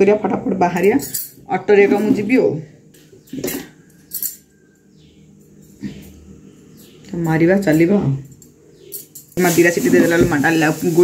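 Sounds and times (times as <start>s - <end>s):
bangles clinking: 3.8s - 5.8s, 8.2s - 9.6s.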